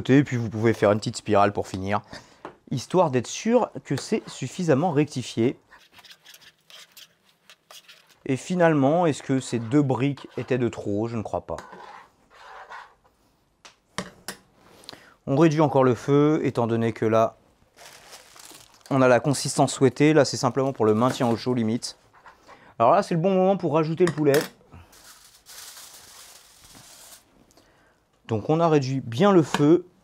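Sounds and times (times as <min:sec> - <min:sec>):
aluminium foil crinkling: 0:17.7 - 0:19.3, 0:24.9 - 0:27.3.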